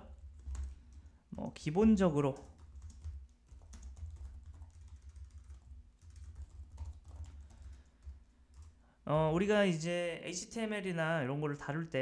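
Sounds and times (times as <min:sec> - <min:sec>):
typing on keyboard: 0:00.1 - 0:01.1, 0:02.3 - 0:08.8.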